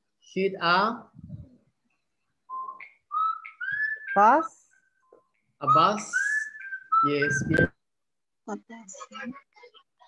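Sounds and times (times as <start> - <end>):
whistled rising tones: 2.5 - 7.8.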